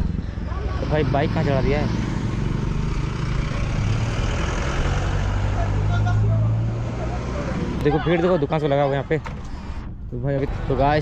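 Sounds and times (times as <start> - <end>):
road noise: 0.0 - 11.0
vehicle engine humming: 0.0 - 11.0.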